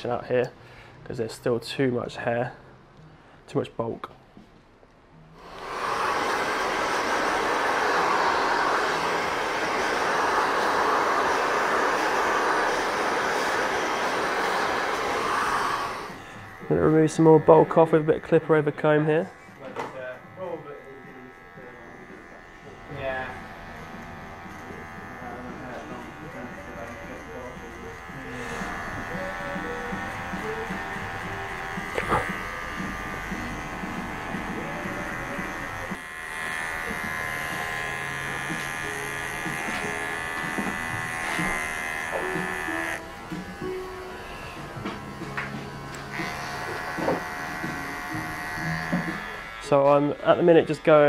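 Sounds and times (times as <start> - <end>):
electric hair clippers buzzing: 5.4 - 51.0.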